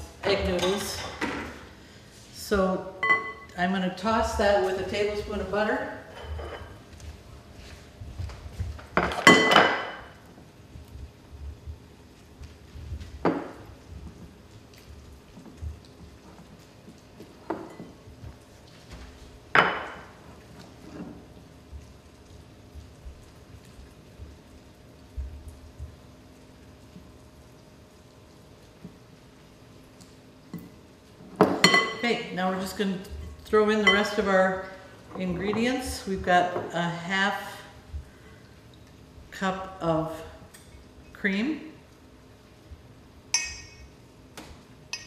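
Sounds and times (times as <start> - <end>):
faint steady hum: 0.0 - 45.0
utensil clinking against glass bowl: 43.3 - 43.9.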